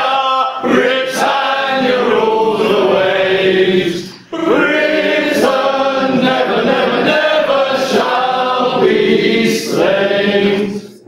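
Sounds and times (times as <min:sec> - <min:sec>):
man singing long notes: 0:04.3 - 0:05.6.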